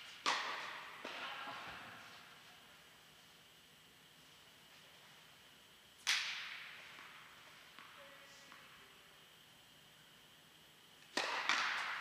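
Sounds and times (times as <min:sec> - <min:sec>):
sharp crack echoing in a hall: 0:00.0 - 0:02.4, 0:06.0 - 0:08.7, 0:11.0 - 0:12.0.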